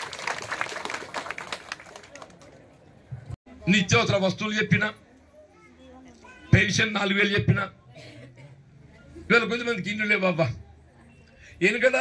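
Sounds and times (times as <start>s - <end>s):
crowd clapping: 0.0s - 2.7s.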